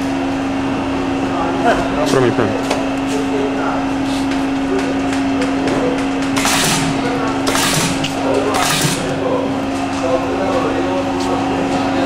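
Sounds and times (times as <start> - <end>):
machine humming: 5.1 - 11.8.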